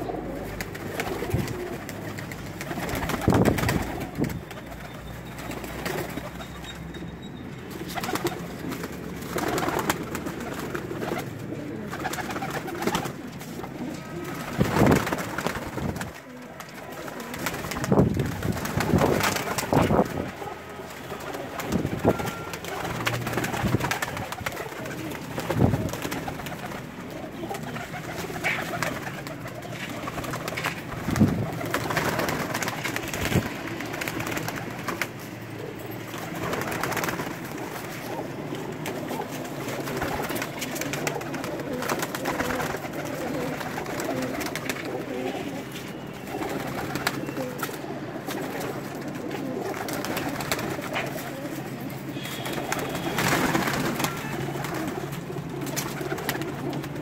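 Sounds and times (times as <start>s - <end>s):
pigeons cooing: 0.0s - 57.0s
wing flaps: 0.3s - 6.4s, 7.8s - 57.0s.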